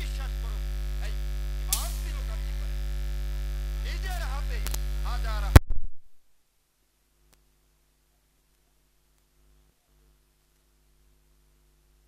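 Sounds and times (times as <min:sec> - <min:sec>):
electrical mains hum: 0:00.0 - 0:12.0
sharp click: 0:01.7 - 0:02.2, 0:04.6 - 0:04.8.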